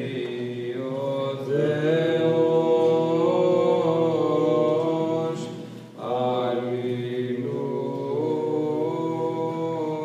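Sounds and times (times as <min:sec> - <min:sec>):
male voices chanting: 0:00.0 - 0:10.0.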